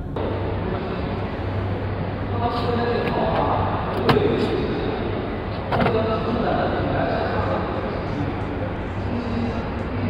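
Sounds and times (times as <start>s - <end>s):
chatter: 0.2s - 10.0s.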